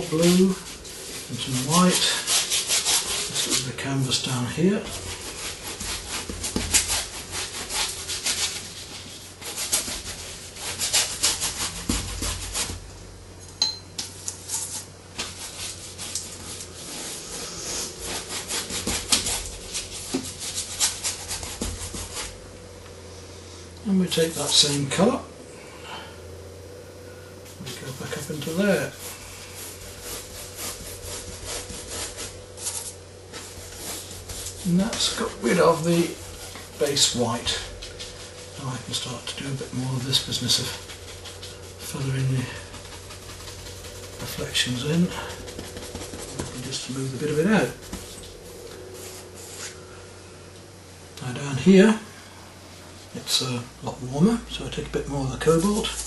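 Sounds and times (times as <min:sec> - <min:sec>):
paintbrush scrubbing on canvas: 0:00.0 - 0:12.9, 0:14.4 - 0:22.5, 0:24.1 - 0:25.3, 0:27.4 - 0:50.4, 0:55.0 - 0:56.0.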